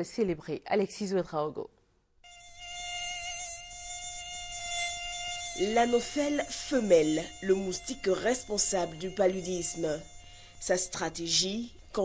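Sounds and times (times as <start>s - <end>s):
mosquito buzzing whine: 2.2s - 12.0s.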